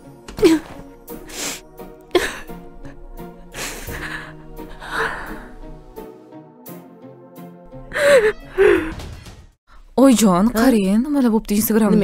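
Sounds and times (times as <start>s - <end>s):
woman sobbing: 0.4s - 0.8s, 1.4s - 5.5s, 7.9s - 8.9s.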